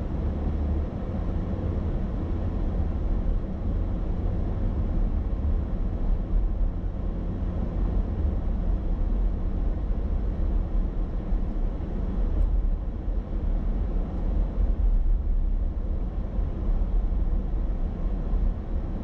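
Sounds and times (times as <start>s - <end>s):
car driving in traffic: 0.0s - 19.0s.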